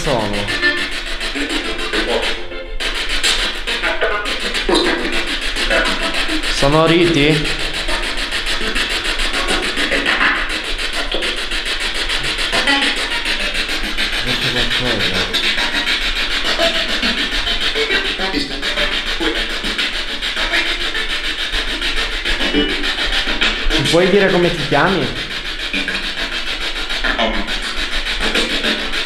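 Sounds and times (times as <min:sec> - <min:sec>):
chopped radio static: 0:00.0 - 0:00.6, 0:06.6 - 0:07.6, 0:14.2 - 0:15.5, 0:23.8 - 0:25.4
snatches of radio music: 0:00.0 - 0:05.1, 0:23.8 - 0:26.0
snatches of radio voices: 0:14.2 - 0:15.4.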